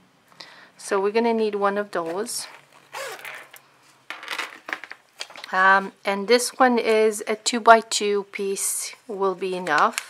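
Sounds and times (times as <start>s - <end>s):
metal zipper pulls clinking: 2.4s - 3.6s.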